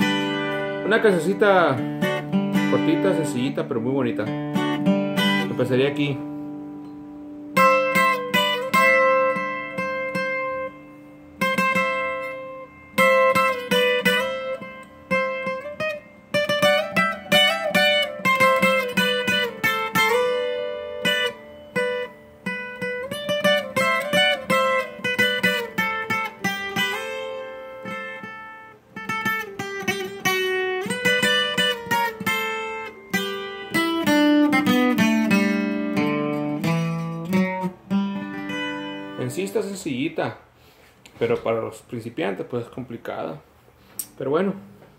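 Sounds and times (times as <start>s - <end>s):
acoustic guitar playing: 0.0s - 44.9s.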